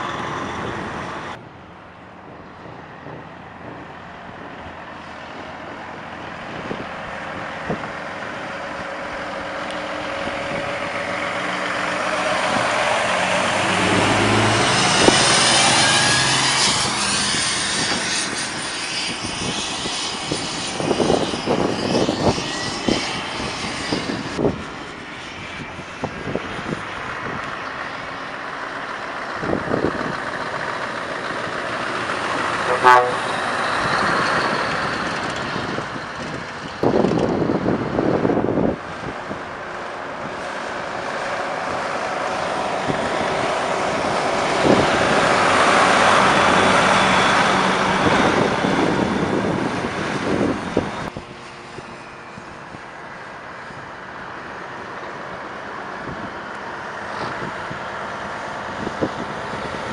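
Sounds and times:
diesel truck accelerating: 0:00.0 - 0:59.9
road noise: 0:00.0 - 0:59.9.

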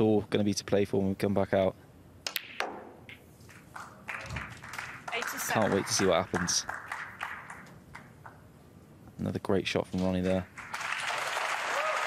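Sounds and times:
audience applauding: 0:03.7 - 0:08.4, 0:10.6 - 0:12.0.

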